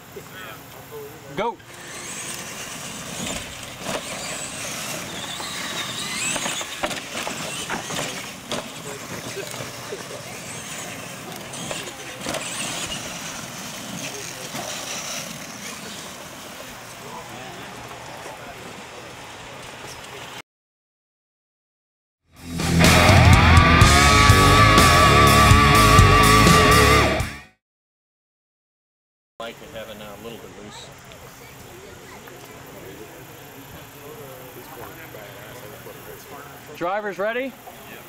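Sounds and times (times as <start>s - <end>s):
electric motors running: 0.2s - 20.2s, 29.6s - 38.0s
tyres scrabbling on dirt: 0.7s - 20.3s
toy truck landing knocks: 5.4s - 8.8s.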